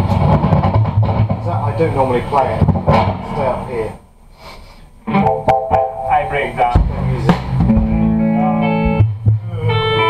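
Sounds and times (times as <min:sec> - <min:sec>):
sharp knocks: 0:00.0 - 0:01.8, 0:02.5 - 0:03.5, 0:08.8 - 0:09.4
electric guitar with effects: 0:05.0 - 0:10.0.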